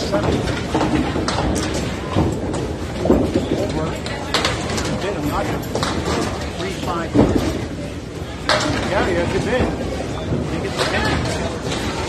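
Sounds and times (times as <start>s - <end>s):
bowling balls rolling on wooden lanes: 0.0s - 12.0s
clacks of balls and pins: 0.0s - 12.0s
murmur of voices: 0.0s - 12.0s.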